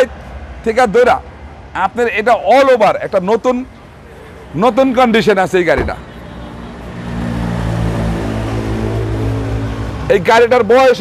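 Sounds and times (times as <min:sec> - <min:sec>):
vehicle engine humming: 0:03.6 - 0:10.1.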